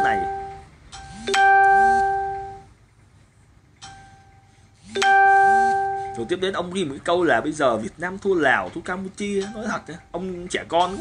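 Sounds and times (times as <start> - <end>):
two-note electronic chime: 0.0 - 2.7, 5.0 - 6.3.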